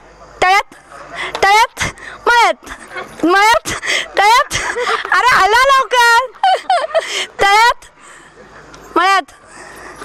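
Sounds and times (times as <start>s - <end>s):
woman shouting calls: 5.1s - 6.4s.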